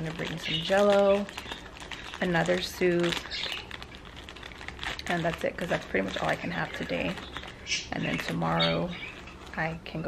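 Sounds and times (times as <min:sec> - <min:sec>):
woman's voice: 0:00.0 - 0:01.4, 0:02.2 - 0:03.6, 0:05.0 - 0:07.2, 0:07.8 - 0:10.0.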